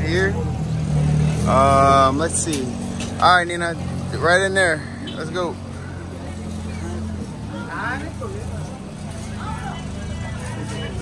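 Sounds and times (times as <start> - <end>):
background voices talking: 0.0 - 11.0.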